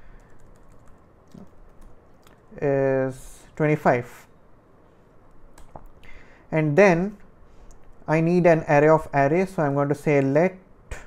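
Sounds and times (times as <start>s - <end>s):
typing on computer keyboard: 0.2s - 1.9s.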